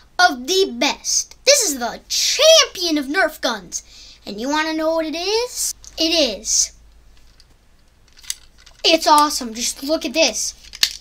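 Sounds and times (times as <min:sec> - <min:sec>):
boy speaking: 0:00.0 - 0:06.8, 0:08.8 - 0:10.6.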